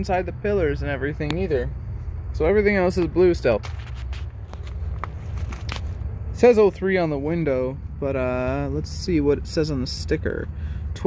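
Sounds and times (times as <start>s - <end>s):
footsteps on gravel: 2.8s - 6.0s.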